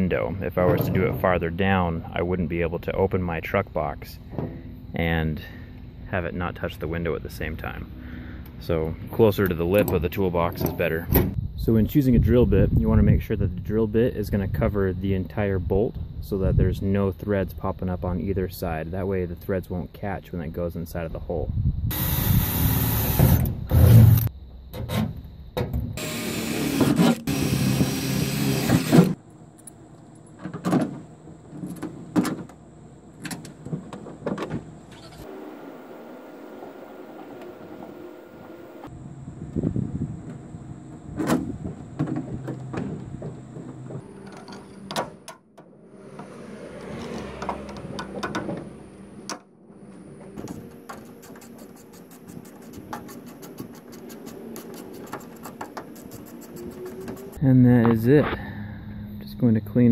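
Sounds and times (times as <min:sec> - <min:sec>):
cordless drill boring through metal: 0:21.9 - 0:23.4, 0:26.0 - 0:29.2
clicks and knocks of hand work: 0:50.4 - 0:57.4.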